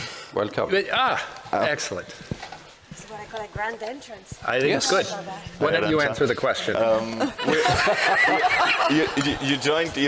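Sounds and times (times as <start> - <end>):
people laughing together: 7.0 - 10.0.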